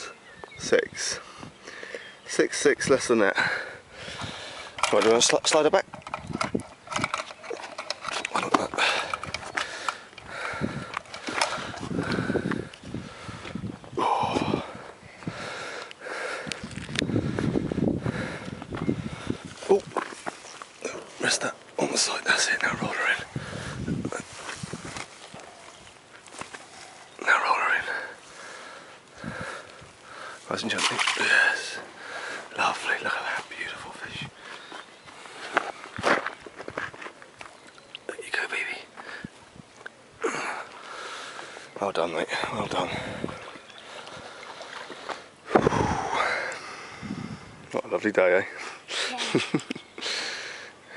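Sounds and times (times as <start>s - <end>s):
gear clicking and rustling: 4.7s - 10.3s.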